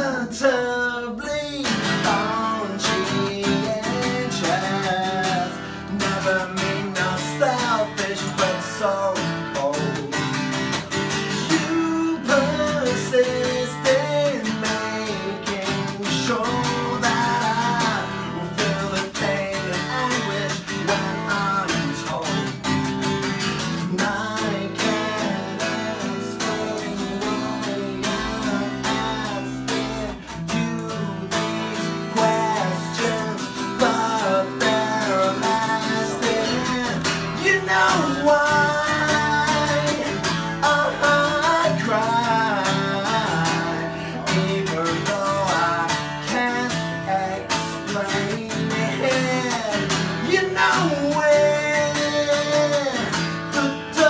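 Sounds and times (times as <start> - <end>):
acoustic guitars playing: 0.0 - 54.0
man singing: 0.0 - 54.0.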